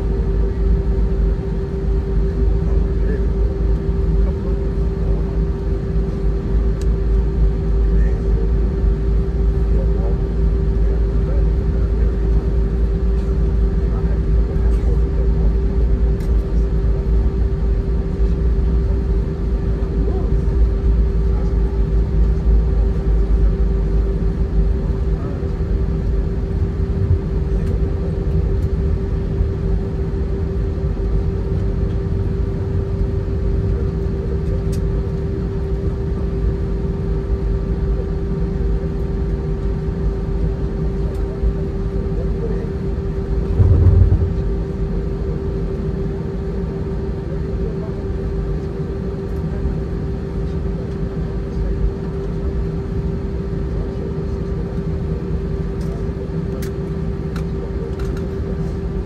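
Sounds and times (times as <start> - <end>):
constant cabin hum: 0.0 - 59.0
jet engines rumbling: 0.0 - 59.0.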